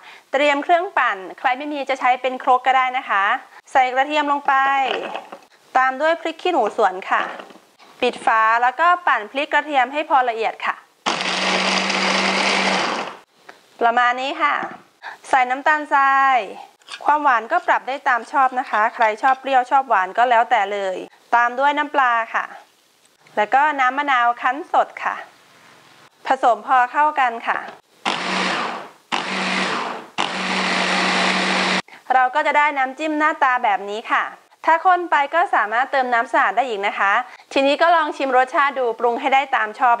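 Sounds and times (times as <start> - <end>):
electric food chopper running: 11.1 - 13.2, 28.1 - 31.8
hand blender motor whizzing: 11.1 - 13.2, 28.1 - 31.8.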